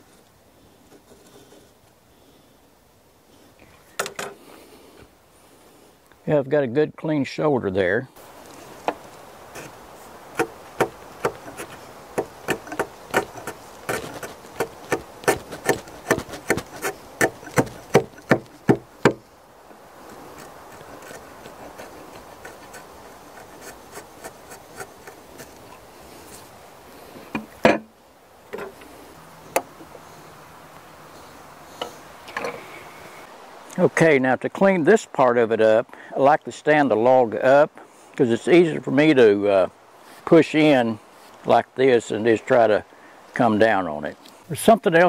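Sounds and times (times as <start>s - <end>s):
chisel scraping wood: 0.9s - 1.8s, 8.6s - 19.3s, 20.0s - 26.4s.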